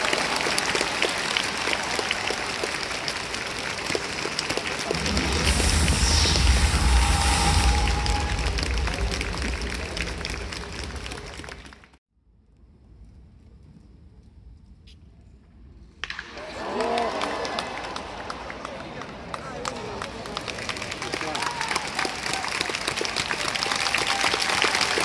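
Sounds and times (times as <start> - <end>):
crowd applauding: 0.0 - 12.0, 16.1 - 25.0
deep low rumble: 4.8 - 11.8.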